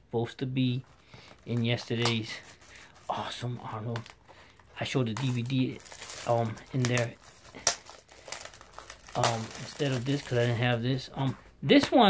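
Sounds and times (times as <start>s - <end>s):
plastic packaging crinkling: 0.6s - 11.6s.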